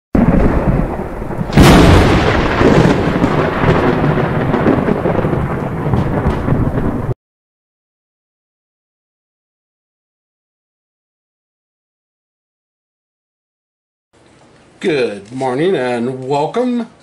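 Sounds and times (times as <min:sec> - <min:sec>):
sharp thunder crack: 0:00.2 - 0:07.2
thunder rumbling: 0:00.2 - 0:07.2.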